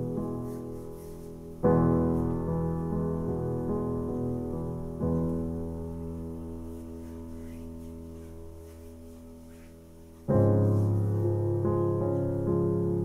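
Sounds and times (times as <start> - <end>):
piano chords: 0.0 - 13.0.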